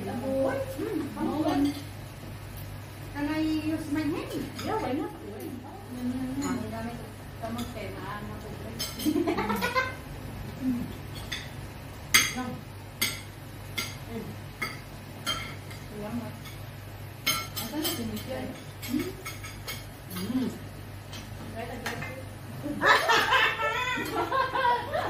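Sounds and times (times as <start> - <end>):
steady low hum: 0.0 - 25.0
cutlery and plates clinking: 8.8 - 9.6, 17.2 - 22.2.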